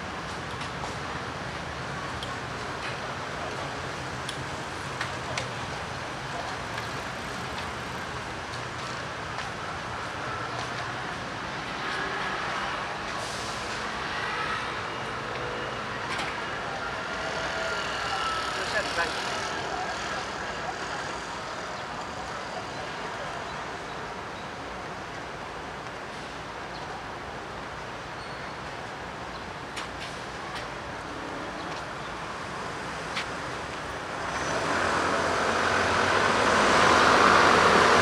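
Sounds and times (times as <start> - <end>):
road traffic: 0.0 - 38.0
passersby talking: 15.9 - 24.3.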